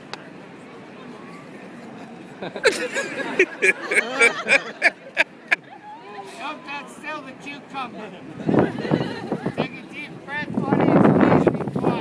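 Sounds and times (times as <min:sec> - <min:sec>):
low crowd voices: 0:00.0 - 0:12.0
man laughing: 0:02.4 - 0:05.6.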